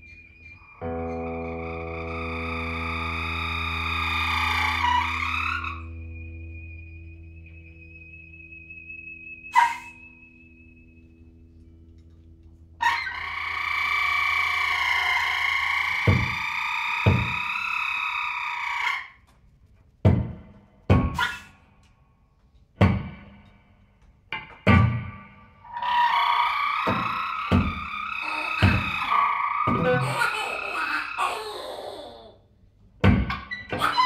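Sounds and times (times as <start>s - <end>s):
thin high whistle-like tone: 0.0s - 11.8s
high sustained tones: 0.0s - 12.0s
distorted electric guitar drone: 0.8s - 6.9s
low thumps: 20.0s - 21.2s.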